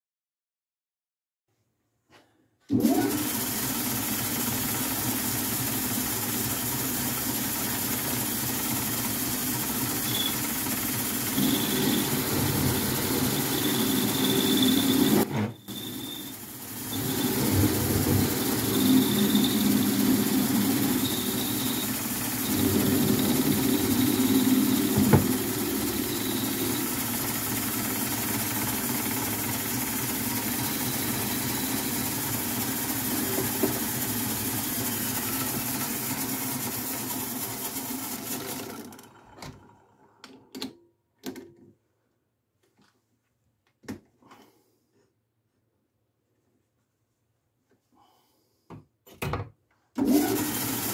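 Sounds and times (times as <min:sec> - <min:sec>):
metal lathe humming: 0:11.2 - 0:34.0
faint high whine: 0:11.4 - 0:26.9.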